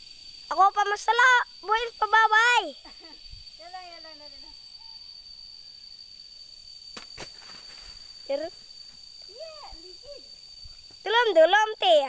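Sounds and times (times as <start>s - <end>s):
insect chirring: 0.0s - 12.0s.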